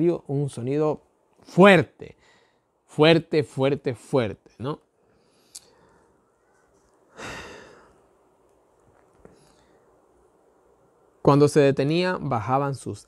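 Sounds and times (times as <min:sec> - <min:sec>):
man sighing: 0:07.1 - 0:07.9.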